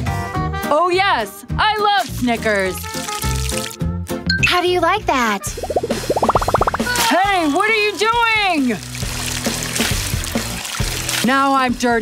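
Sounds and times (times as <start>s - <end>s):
background music: 0.0s - 11.2s
squeeze bottle squirting syrup: 2.8s - 3.8s.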